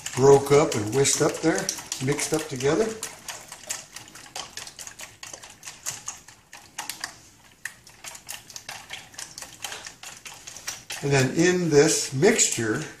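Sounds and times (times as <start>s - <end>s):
whisk beating eggs: 0.0s - 13.0s.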